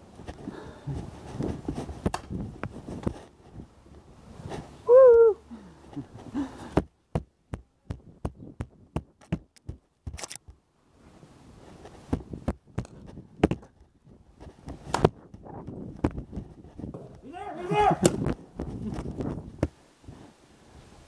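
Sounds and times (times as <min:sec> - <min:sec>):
person shouting: 0:17.1 - 0:18.2.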